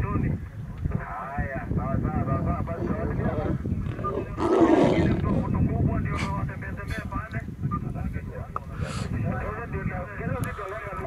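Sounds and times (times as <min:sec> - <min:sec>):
lion growling: 0:02.7 - 0:05.5.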